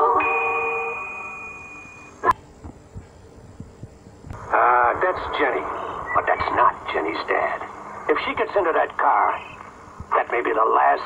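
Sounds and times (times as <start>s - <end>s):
jingle held note: 0.0s - 2.1s
high chime ringing: 0.0s - 2.2s
low hiss: 0.2s - 11.0s.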